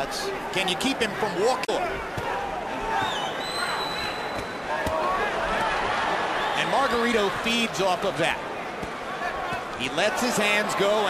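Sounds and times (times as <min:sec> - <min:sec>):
crowd din: 0:00.0 - 0:11.0
high whistle: 0:03.0 - 0:04.6.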